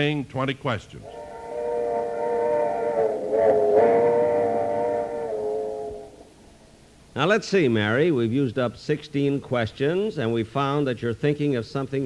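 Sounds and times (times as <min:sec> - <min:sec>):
low rumble of moving train: 0:01.0 - 0:06.4
train whistle: 0:01.0 - 0:06.6.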